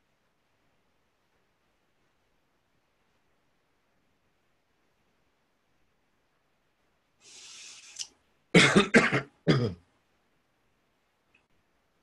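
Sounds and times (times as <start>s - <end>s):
man coughing: 8.6s - 9.8s.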